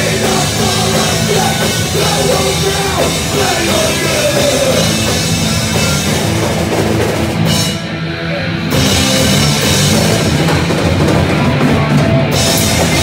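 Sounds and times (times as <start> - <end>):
drum kit: 0.0 - 13.0
rock band playing: 0.0 - 13.0.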